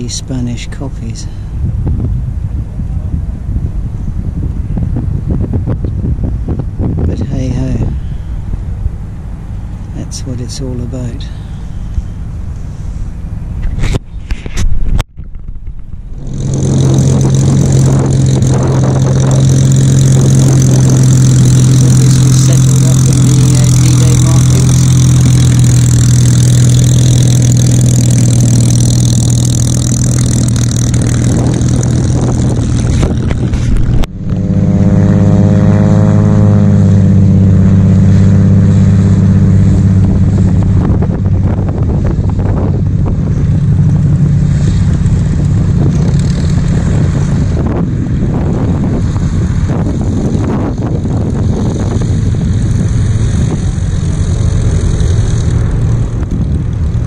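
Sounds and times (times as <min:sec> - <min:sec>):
engine pitch rising and falling: 0:00.0 - 0:57.0
propeller aircraft engines running: 0:00.0 - 0:57.0.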